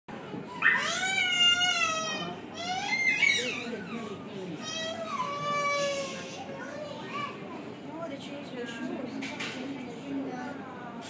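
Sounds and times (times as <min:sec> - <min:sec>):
young child wailing: 0:00.5 - 0:03.8.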